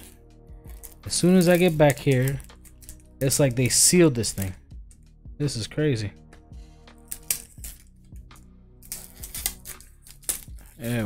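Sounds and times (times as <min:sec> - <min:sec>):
cellophane crackling: 0:00.0 - 0:03.7, 0:08.8 - 0:11.0
quiet background music: 0:00.0 - 0:11.0.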